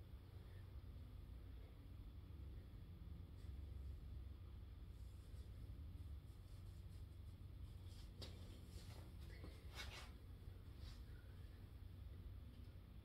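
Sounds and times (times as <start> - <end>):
faint soft noises: 0.0 - 13.0.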